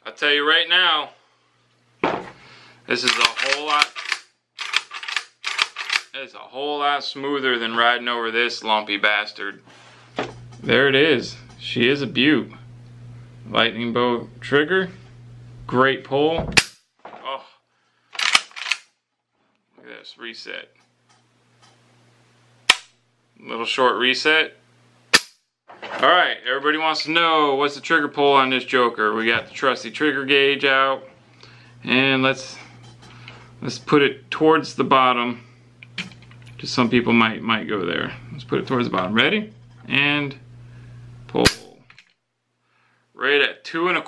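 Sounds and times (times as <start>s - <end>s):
rifle hammer metallic snap: 22.7s - 23.0s, 41.4s - 41.8s.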